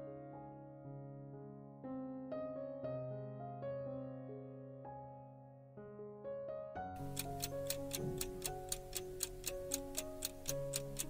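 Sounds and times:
clock ticking: 0:07.0 - 0:11.0.

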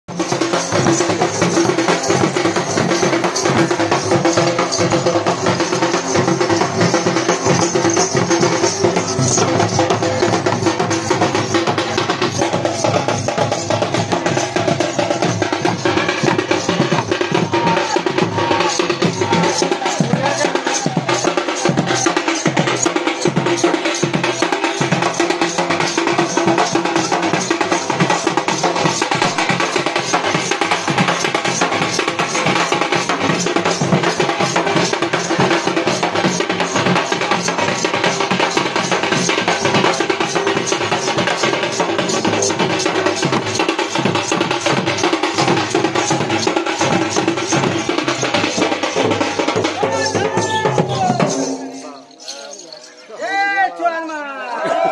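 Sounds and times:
barrel drums beaten fast: 0:00.1 - 0:52.6.

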